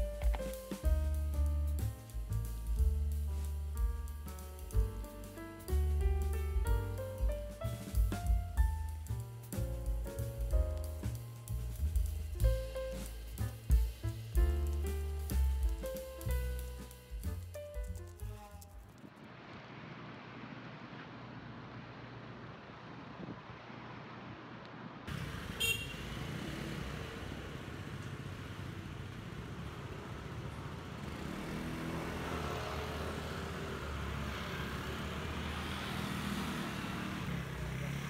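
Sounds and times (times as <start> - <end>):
street traffic: 0.0 - 38.0
scooters riding by: 25.1 - 38.0.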